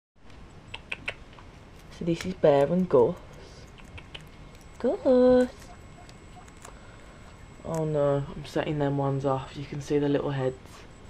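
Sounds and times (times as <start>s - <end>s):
guinea pig nibbling leaf: 0.7s - 6.8s, 7.6s - 8.9s.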